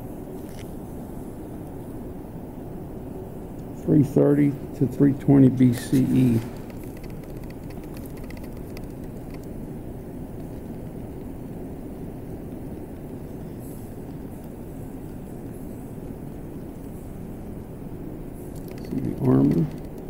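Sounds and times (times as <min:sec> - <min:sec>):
low rumble of room noise: 0:00.0 - 0:20.0.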